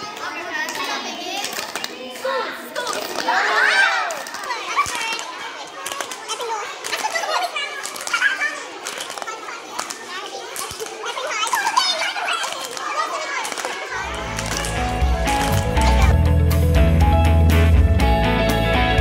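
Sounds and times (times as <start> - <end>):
girls talking and laughing: 0.0 - 16.3
hand claps: 4.0 - 16.2
background music with low beat: 14.1 - 19.0.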